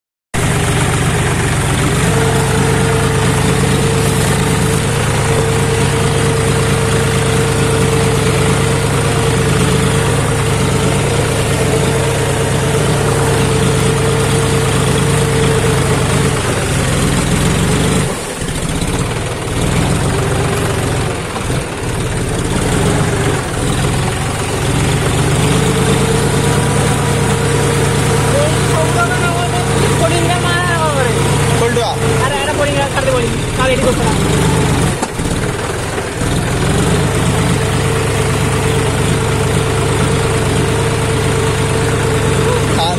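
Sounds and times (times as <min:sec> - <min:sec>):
tractor diesel engine running: 0:00.4 - 0:42.9.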